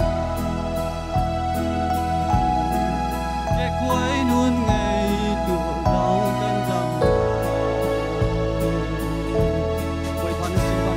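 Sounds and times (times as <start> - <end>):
instrumental accompaniment: 0.0 - 10.9
man singing gospel song: 1.9 - 10.9.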